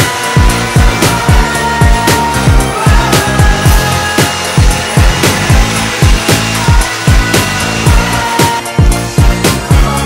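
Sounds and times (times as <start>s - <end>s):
punchy kick drum beat: 0.0s - 10.0s
upbeat pop music: 0.0s - 10.0s.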